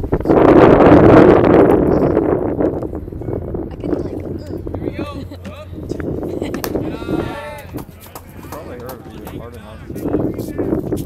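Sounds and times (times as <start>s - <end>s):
spectators chatting and calling: 3.0s - 11.0s.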